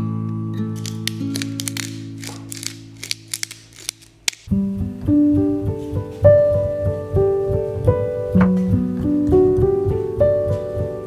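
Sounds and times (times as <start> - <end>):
soft acoustic guitar music: 0.0 - 0.8, 4.5 - 11.0
pepper mill grinding clicks: 0.8 - 4.5.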